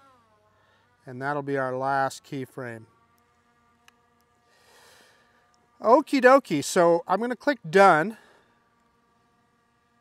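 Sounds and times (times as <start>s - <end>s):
soft breath exhale: 4.5s - 5.5s
man speaking: 5.8s - 8.2s.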